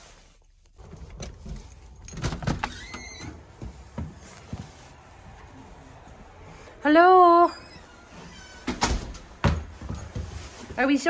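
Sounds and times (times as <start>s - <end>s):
door squeak: 2.1s - 3.5s, 7.4s - 9.3s.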